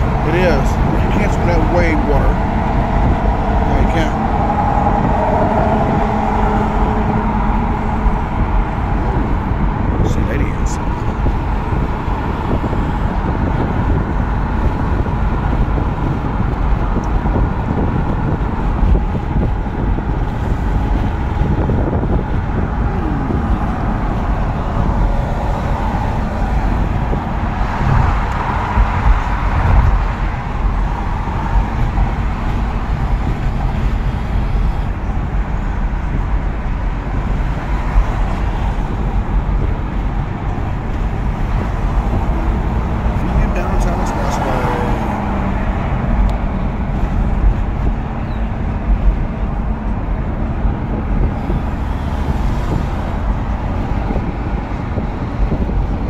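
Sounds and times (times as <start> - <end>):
car road noise at highway speed: 0.0 - 56.0.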